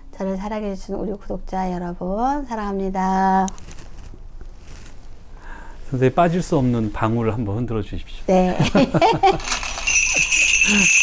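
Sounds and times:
cluster of small bells jingling: 9.2 - 11.0.

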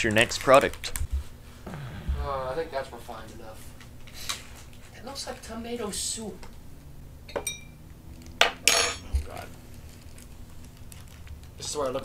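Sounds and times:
glass clinking: 7.3 - 7.8, 8.7 - 9.0
plastic bag crinkling: 9.6 - 12.0.

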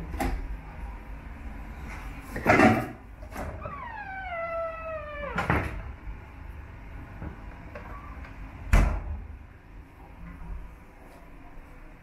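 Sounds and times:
fridge door squealing: 3.3 - 5.8.

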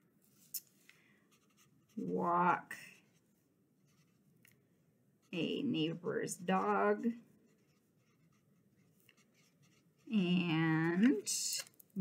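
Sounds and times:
marker scratching on paper: 1.3 - 3.2, 7.4 - 10.4.

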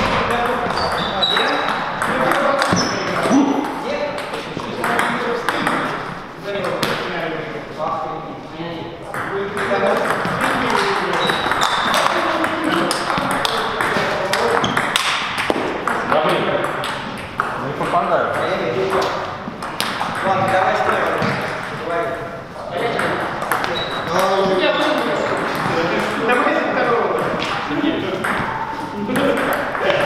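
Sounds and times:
people talking: 0.0 - 15.1, 15.7 - 30.0.

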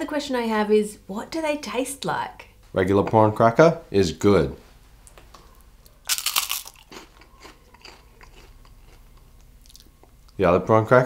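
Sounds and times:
cracker crunching: 5.1 - 10.4.

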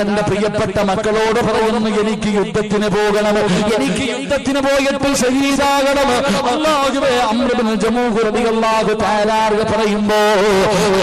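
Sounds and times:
man giving melodic speech: 0.0 - 11.0.

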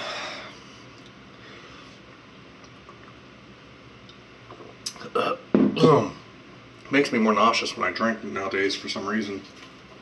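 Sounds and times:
man burping: 4.9 - 6.3.

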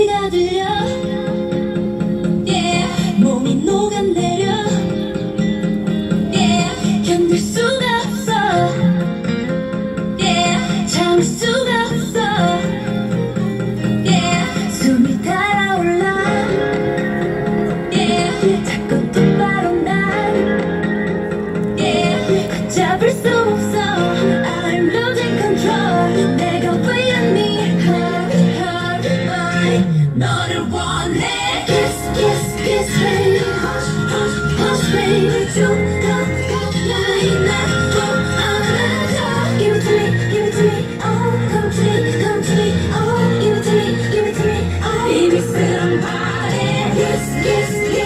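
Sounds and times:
instrumental backing track: 0.0 - 30.2
woman singing pop song: 0.0 - 48.0.

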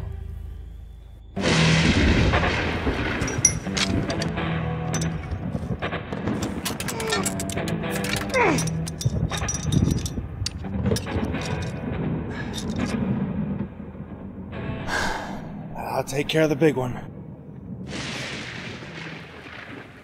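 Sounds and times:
dark horror music: 0.0 - 19.9.

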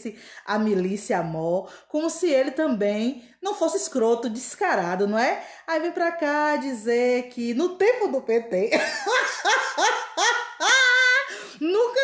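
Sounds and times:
woman laughing: 8.7 - 11.5.

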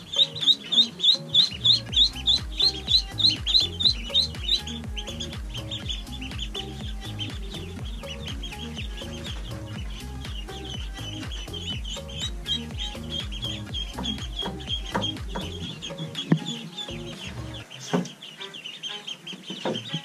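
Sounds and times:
background music with steady beat: 0.0 - 20.0
ducklings peeping: 0.0 - 20.0.

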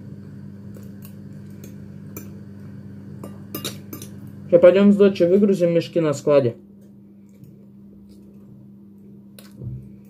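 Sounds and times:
steady low hum: 0.0 - 10.0
person chewing: 7.2 - 9.8.

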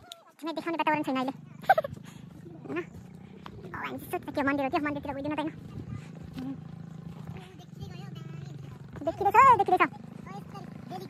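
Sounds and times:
faint voices of people walking: 0.0 - 11.0
low background rumble: 0.3 - 11.0.

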